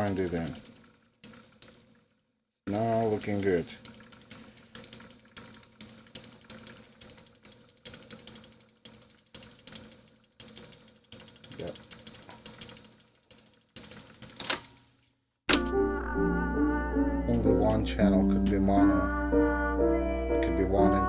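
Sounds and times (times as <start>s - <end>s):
tape deck fast-winding: 0.0s - 14.7s, 17.2s - 21.0s
rapid irregular tape clicking: 0.0s - 15.7s, 17.3s - 21.0s.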